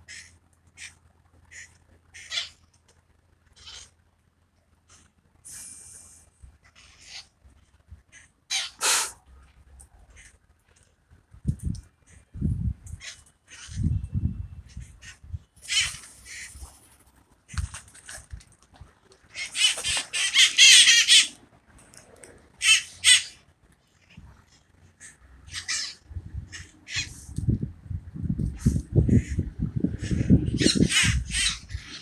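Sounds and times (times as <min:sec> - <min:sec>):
parakeets squawking: 0:01.5 - 0:02.6, 0:03.6 - 0:03.9, 0:06.8 - 0:07.3, 0:08.2 - 0:09.1, 0:13.0 - 0:13.9, 0:14.7 - 0:16.6, 0:19.3 - 0:21.4, 0:22.6 - 0:23.4, 0:25.0 - 0:27.2, 0:28.6 - 0:29.4, 0:30.0 - 0:32.0.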